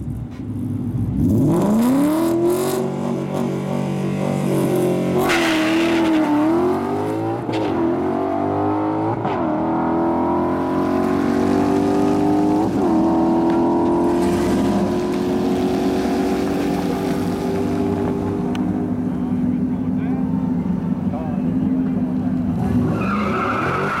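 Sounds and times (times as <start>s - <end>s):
car engine accelerating: 0.6s - 24.0s.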